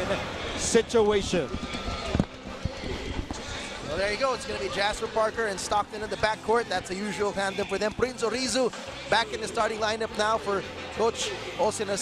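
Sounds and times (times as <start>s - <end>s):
basketball arena background noise: 0.0s - 12.0s.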